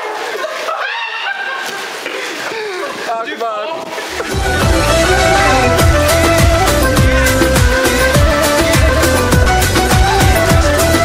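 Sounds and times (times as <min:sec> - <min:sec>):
heavy rain hiss: 0:03.9 - 0:10.9.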